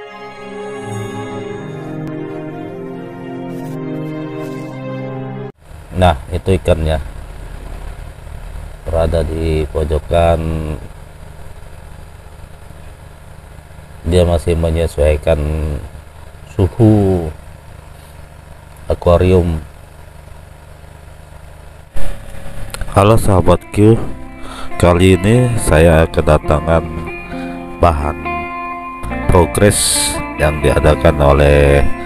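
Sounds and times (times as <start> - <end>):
aquarium pump humming: 19.8 - 25.5.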